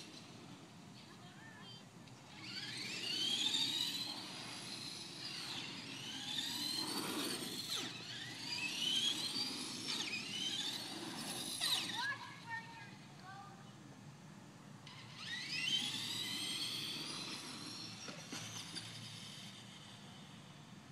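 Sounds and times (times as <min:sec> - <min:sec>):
rc truck electric motors whining: 0:00.0 - 0:13.1, 0:14.7 - 0:20.9.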